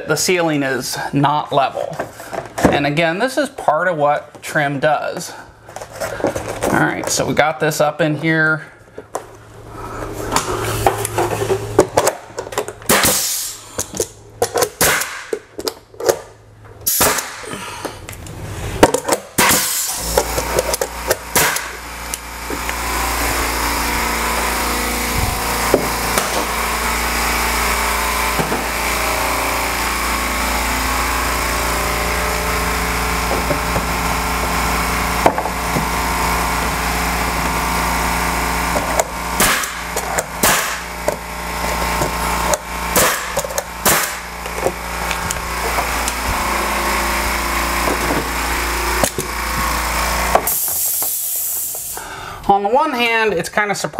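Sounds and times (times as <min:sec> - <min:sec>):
air compressor running: 0:01.8 - 0:02.8, 0:05.2 - 0:07.2, 0:08.5 - 0:52.6
pneumatic nailer shot: 0:10.3 - 0:17.7, 0:18.8 - 0:52.1.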